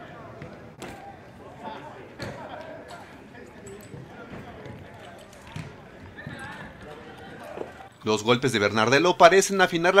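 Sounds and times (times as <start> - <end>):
faint players' voices: 0.0 - 10.0.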